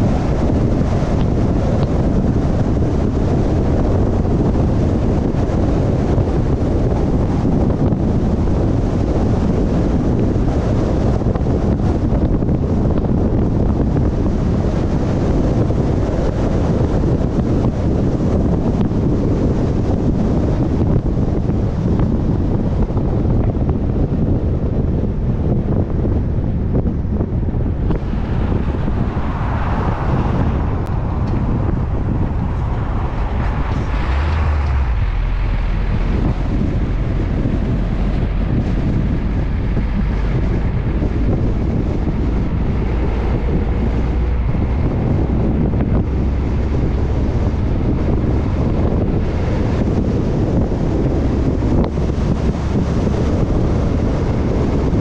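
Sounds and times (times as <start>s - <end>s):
low road and truck noise: 0.0s - 55.0s
wind rushing over microphone: 0.0s - 55.0s.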